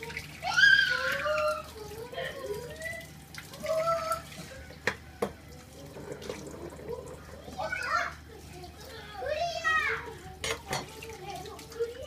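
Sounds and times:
child's high-pitched call: 0.4 - 4.3, 7.5 - 8.2.

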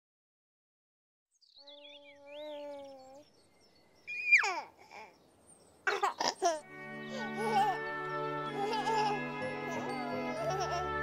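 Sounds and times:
baby cooing: 1.6 - 3.2, 4.1 - 5.2
baby giggling: 4.1 - 5.1, 5.9 - 7.9, 8.5 - 11.0
baby squealing: 4.1 - 5.1.

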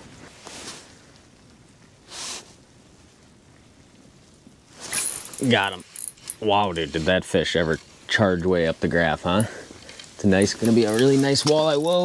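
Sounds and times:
sharp rustle and clatter: 0.0 - 1.1, 4.7 - 12.0
faint steady hiss: 0.0 - 12.0
soft rush of noise: 0.0 - 12.0.

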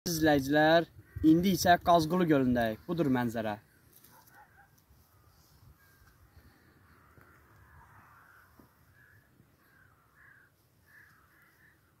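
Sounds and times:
distant bird calls: 0.1 - 1.6, 3.7 - 12.0.

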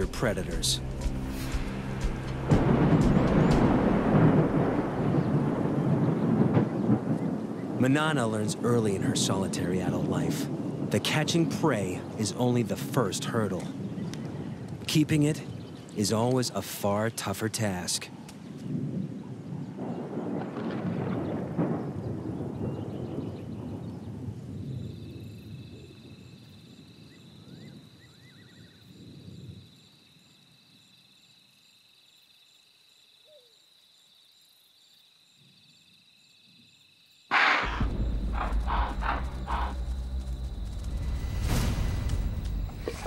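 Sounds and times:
night insects chirring: 0.0 - 43.0
rolling thunder: 1.6 - 12.9, 18.7 - 26.3, 37.3 - 43.0
deep growling and struggling: 37.4 - 41.0.

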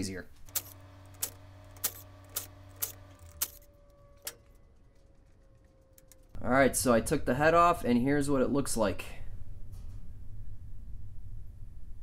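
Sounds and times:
small metal parts clinking: 0.5 - 6.4.

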